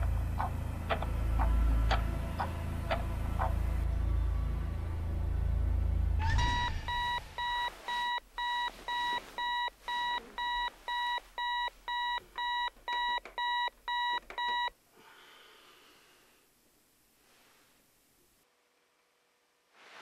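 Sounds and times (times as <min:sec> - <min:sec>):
alarm clock beeping: 0:06.4 - 0:14.7.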